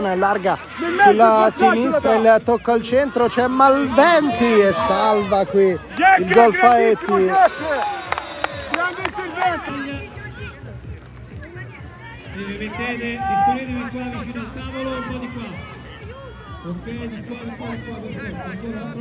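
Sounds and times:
players and spectators shouting: 0:00.0 - 0:10.8, 0:11.8 - 0:19.0.

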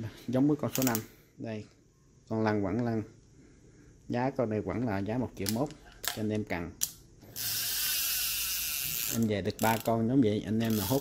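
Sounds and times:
fishing reel whirring: 0:07.3 - 0:10.0, 0:10.6 - 0:11.0.

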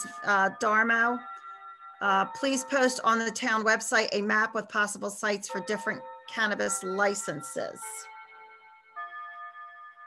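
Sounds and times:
faint chime tones: 0:00.0 - 0:03.6, 0:05.5 - 0:10.0.

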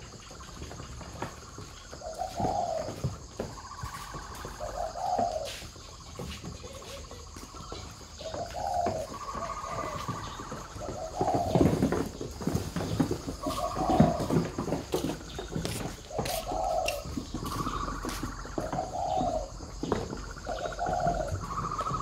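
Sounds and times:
doves cooing: 0:00.0 - 0:22.0
flip-flop footsteps: 0:00.0 - 0:22.0.

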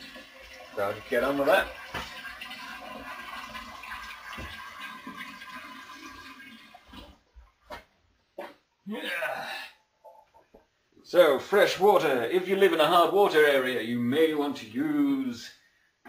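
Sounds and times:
tap water running into container: 0:00.0 - 0:07.3.

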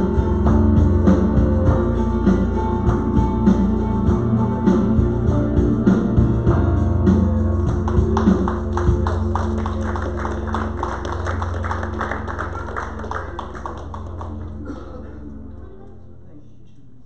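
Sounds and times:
quick tapping rhythm: 0:07.7 - 0:14.4.

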